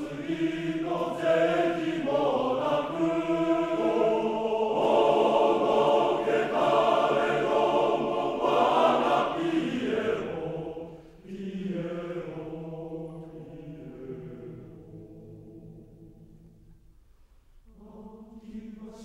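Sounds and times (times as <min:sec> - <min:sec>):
male choir singing a cappella: 0:00.0 - 0:16.3, 0:17.7 - 0:19.0.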